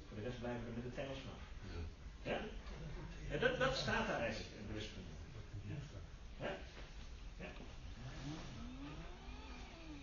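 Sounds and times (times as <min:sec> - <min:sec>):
low steady hum: 0:00.0 - 0:10.0
faint vehicle engine: 0:07.4 - 0:10.0.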